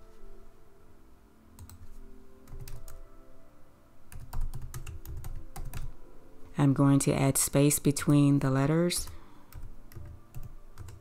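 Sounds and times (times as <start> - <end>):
typing on computer keyboard: 1.6 - 3.0, 4.1 - 6.0, 9.0 - 11.0.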